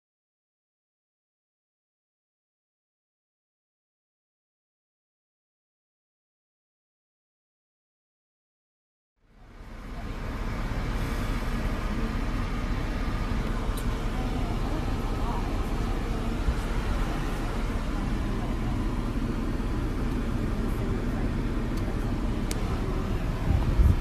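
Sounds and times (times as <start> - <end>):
road and engine noise in car: 9.2 - 24.0.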